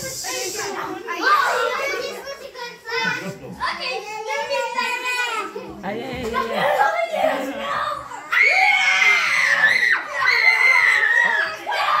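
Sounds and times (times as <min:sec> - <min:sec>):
hiss: 0:00.0 - 0:00.9
loud rising and falling cry: 0:08.3 - 0:12.0.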